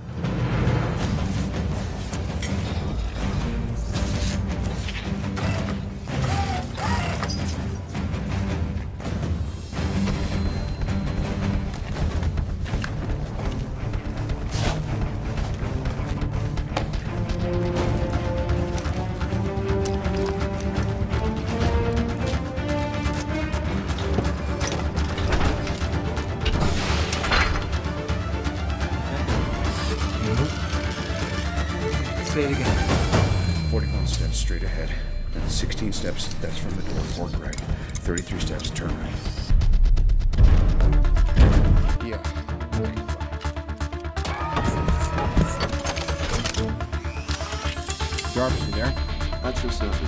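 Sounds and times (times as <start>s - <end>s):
film music: 0.0s - 50.0s.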